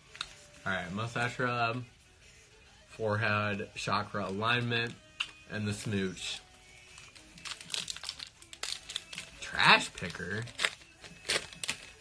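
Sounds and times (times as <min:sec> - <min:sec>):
foil wrapper crinkling: 0:06.8 - 0:12.0.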